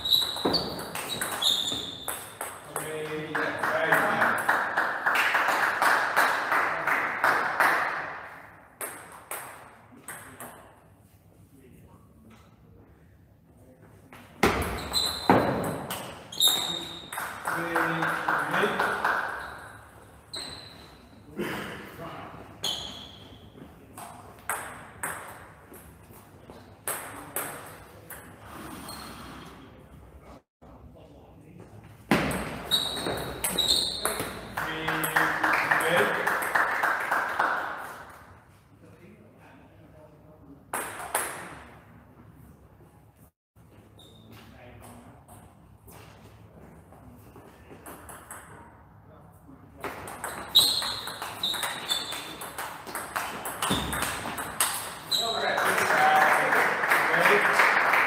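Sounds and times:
table tennis ball hits and bounces: 0.0 - 4.2, 8.2 - 10.8, 14.4 - 18.0, 23.9 - 26.0, 26.8 - 28.4, 32.1 - 35.2, 40.7 - 41.7, 47.8 - 48.8, 49.8 - 55.4.

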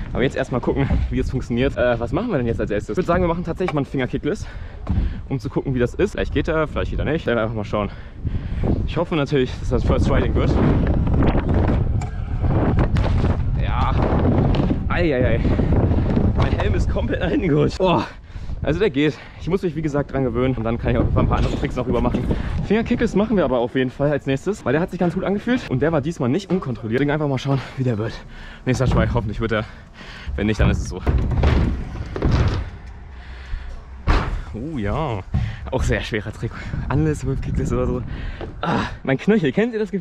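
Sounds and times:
wind rumbling on microphone: 0.0 - 25.7, 28.0 - 39.6
scooter rolling on wooden ramp: 10.1 - 17.8, 28.7 - 33.0
sharp knocks: 30.2 - 32.9, 34.0 - 34.5.

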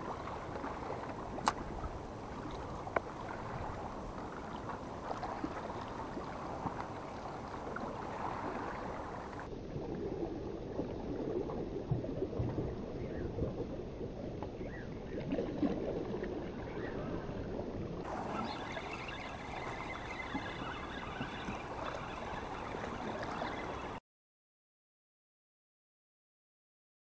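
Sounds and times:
seawater lapping and sloshing: 0.0 - 24.0.

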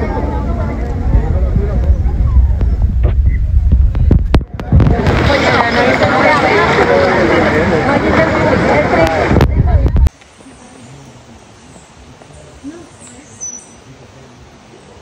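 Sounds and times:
heavy low rumble: 0.0 - 10.2
overlapping voices: 4.6 - 10.1.

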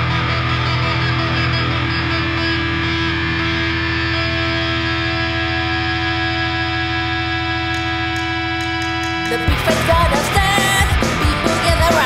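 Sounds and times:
electric guitar chord: 0.0 - 12.0.

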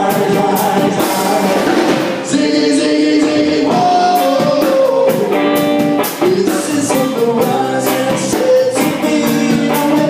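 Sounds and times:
drum kit beat: 0.0 - 10.0
electric guitars playing: 0.0 - 10.0.

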